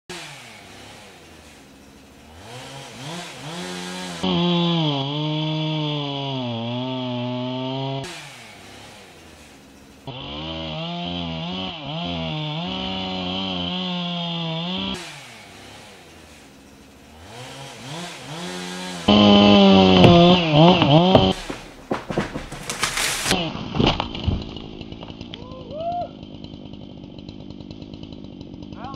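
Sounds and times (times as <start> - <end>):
chainsaw idling and revving: 0.1 - 28.9
low thud: 19.8 - 24.6.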